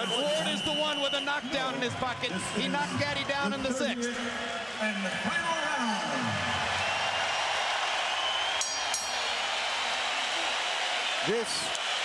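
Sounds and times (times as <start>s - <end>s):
crowd cheering and clapping: 0.0s - 12.0s
ring bell strikes: 8.6s - 9.3s.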